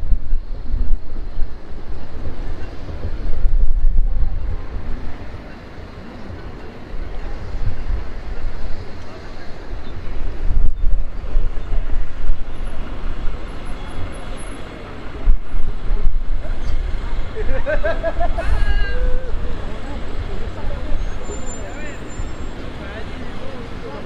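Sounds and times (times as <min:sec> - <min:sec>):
passers-by voices: 0:00.0 - 0:24.0
traffic rumble: 0:00.0 - 0:24.0.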